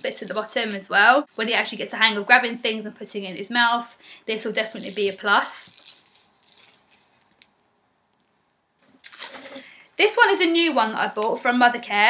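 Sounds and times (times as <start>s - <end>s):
plastic rings and beads rattling: 0.0s - 1.5s, 4.4s - 12.0s
plastic toys rustling and clicking: 0.0s - 1.5s, 4.4s - 11.9s.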